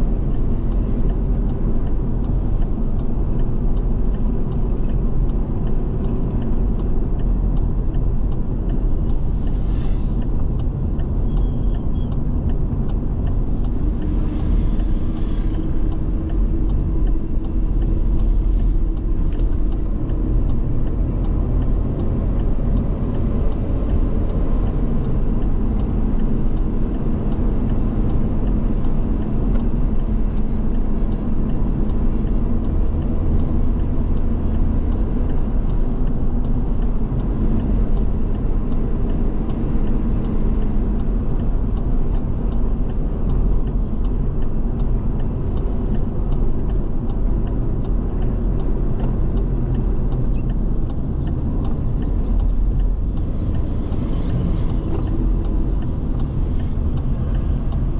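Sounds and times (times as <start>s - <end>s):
car engine and tyre rumble: 0.0s - 57.9s.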